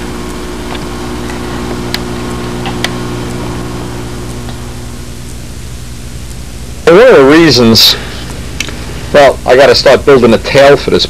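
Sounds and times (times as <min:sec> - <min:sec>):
electrical hum: 0:00.0 - 0:11.0
even hiss: 0:00.0 - 0:11.0.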